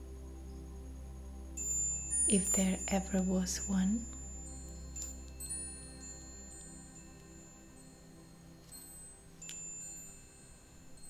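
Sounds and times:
sustained music pad: 0:00.0 - 0:11.0
soft metal chimes: 0:01.5 - 0:11.0.

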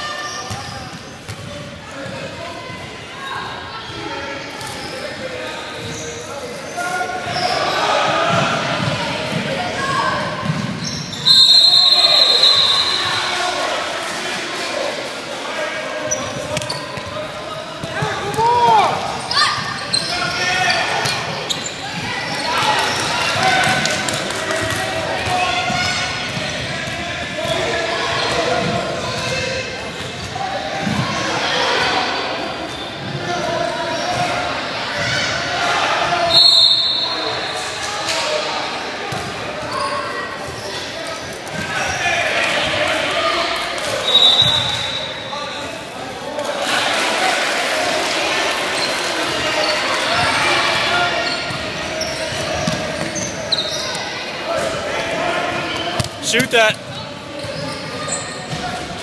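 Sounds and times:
players and spectators shouting: 0:03.1 - 0:29.8, 0:41.6 - 0:57.0.

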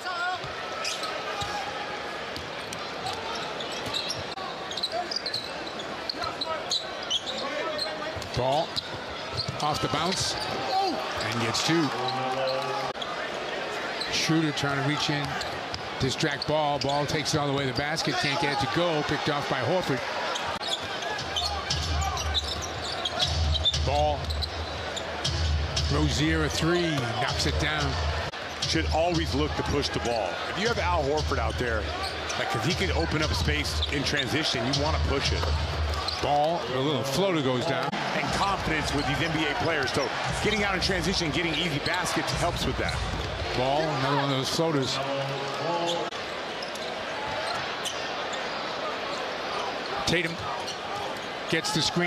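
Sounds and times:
arena crowd murmur: 0:00.0 - 0:52.0
sneaker squeaks: 0:00.8 - 0:01.6, 0:03.0 - 0:13.1, 0:20.2 - 0:25.6, 0:36.0 - 0:36.3, 0:45.8 - 0:49.7
short high shoe squeaks: 0:03.3 - 0:08.0.

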